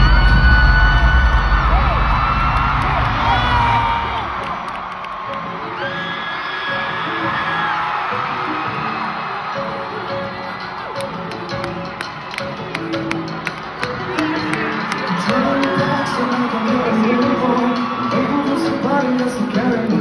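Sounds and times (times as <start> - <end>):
deep bass drone: 0.0 - 4.4
crowd screaming and whooping: 0.0 - 20.0.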